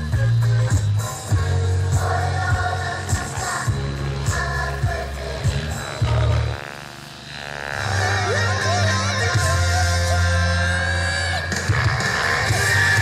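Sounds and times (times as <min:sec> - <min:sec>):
music with heavy bass beat: 0:00.0 - 0:06.6, 0:07.9 - 0:13.0.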